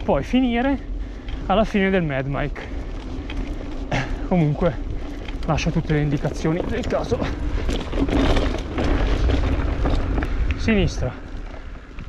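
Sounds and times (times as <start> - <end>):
bike tyres crunching on dirt: 0.0 - 12.0
wind buffeting microphone: 0.0 - 12.0.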